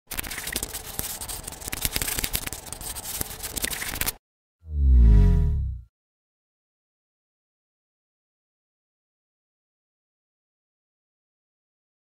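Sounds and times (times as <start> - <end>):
pencil scribbling on paper: 0.1 - 4.1.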